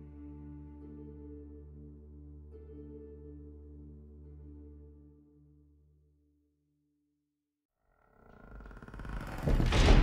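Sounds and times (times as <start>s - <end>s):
low rumble with rattling clicks: 8.5s - 10.0s
loud crash: 9.4s - 10.0s.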